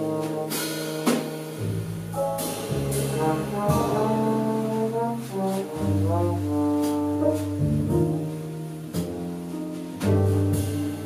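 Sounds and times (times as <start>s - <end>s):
jazz trombone melody: 0.0s - 11.0s
walking double bass: 0.0s - 11.0s.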